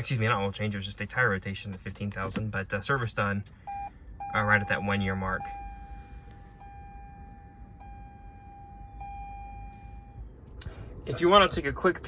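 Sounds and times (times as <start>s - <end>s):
faint low cabin hum: 0.0s - 12.0s
electronic warning chime beeping: 3.7s - 10.2s.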